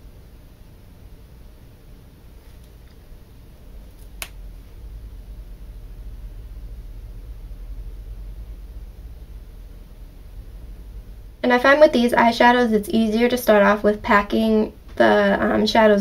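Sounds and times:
steady low rumble: 0:00.0 - 0:16.0.

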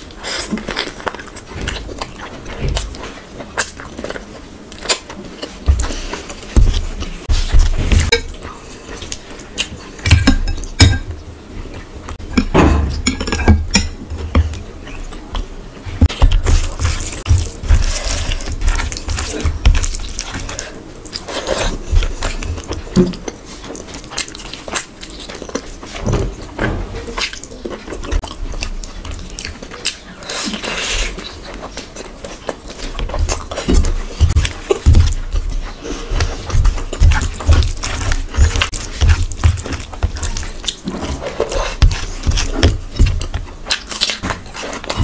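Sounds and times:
wet chewing: 0:00.0 - 0:11.1, 0:13.8 - 0:45.0.

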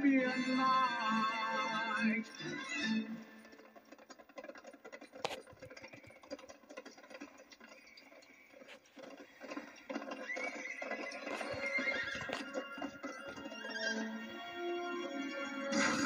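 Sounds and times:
horse hooves clip-clopping: 0:02.5 - 0:15.4
horse neighing: 0:09.4 - 0:14.5.

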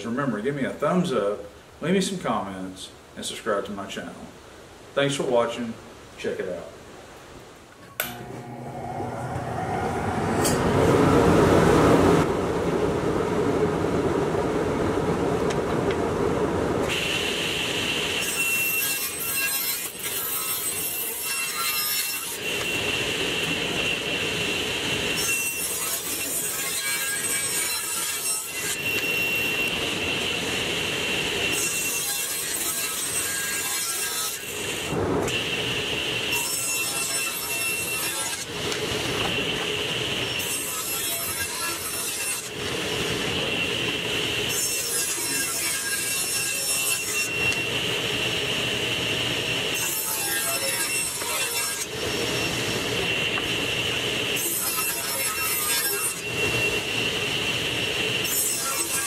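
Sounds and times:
saw blade whine cutting wood: 0:08.0 - 0:12.2, 0:16.9 - 0:59.0
table saw motor running: 0:08.0 - 0:12.2.

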